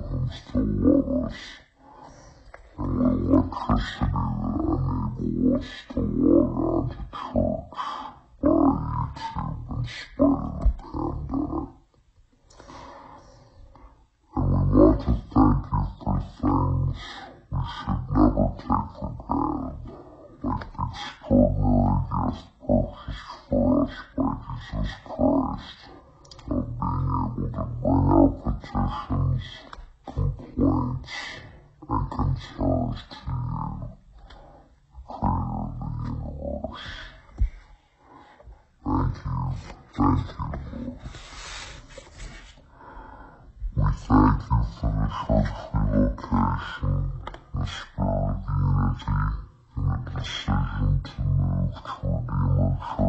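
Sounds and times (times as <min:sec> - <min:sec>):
man speaking: 0:00.0 - 0:01.8, 0:02.6 - 0:11.8, 0:14.3 - 0:42.6, 0:43.6 - 0:53.0
man's rough voice: 0:00.0 - 0:01.8, 0:02.7 - 0:11.9, 0:14.3 - 0:42.7, 0:43.4 - 0:53.0.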